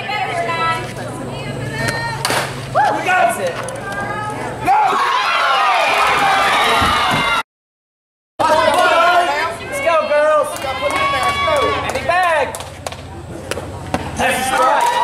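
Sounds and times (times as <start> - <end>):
voices shouting and chanting cheers: 0.0 - 7.4, 8.4 - 12.8, 14.0 - 15.0.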